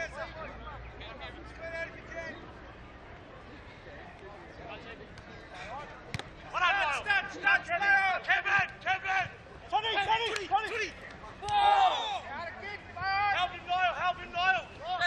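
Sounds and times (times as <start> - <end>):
players shouting: 5.6 - 15.0.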